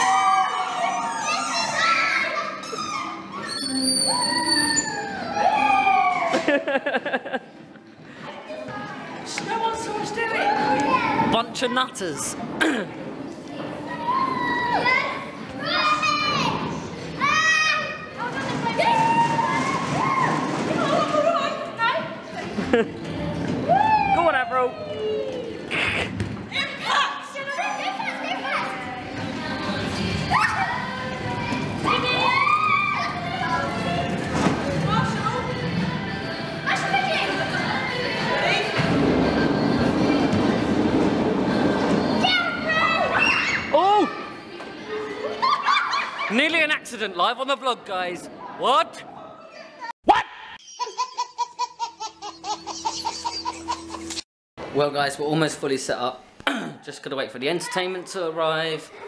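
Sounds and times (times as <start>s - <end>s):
children shouting and squealing: 0.0s - 6.5s, 13.8s - 21.6s, 30.2s - 34.1s, 42.2s - 46.4s
high-pitched squeal: 3.4s - 5.3s
music: 25.4s - 43.3s.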